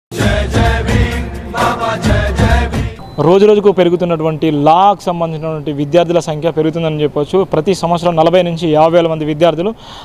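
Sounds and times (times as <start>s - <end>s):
chanted vocals: 0.1s - 3.1s
jingle music with heavy bass: 0.1s - 3.6s.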